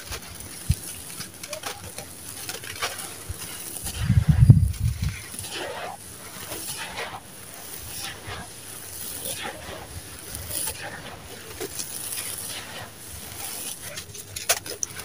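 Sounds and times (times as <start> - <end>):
grains trickling through fingers: 0.0 - 15.0
sand and stones crunching by hand: 0.0 - 15.0
low rumble: 3.9 - 5.3.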